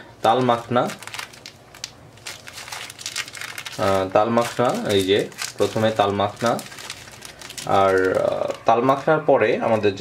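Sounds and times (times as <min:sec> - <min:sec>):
plastic bags crinkling: 0:00.2 - 0:09.1.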